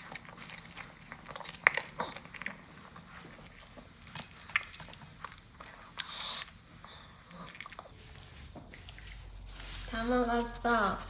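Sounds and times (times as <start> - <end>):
dog crunching food: 0.0 - 9.7.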